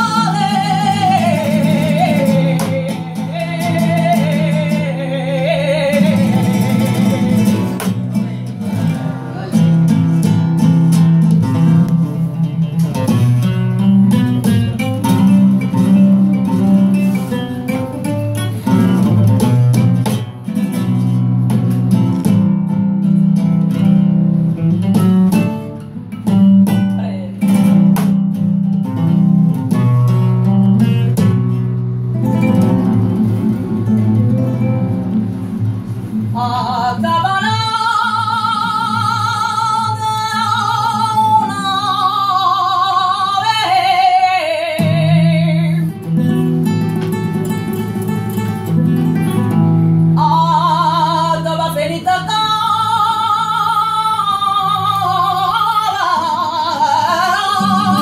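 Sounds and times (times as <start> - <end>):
woman singing: 0.0 - 9.7, 26.4 - 28.4, 36.3 - 46.2, 50.2 - 58.0
flamenco guitar playing: 0.0 - 58.0.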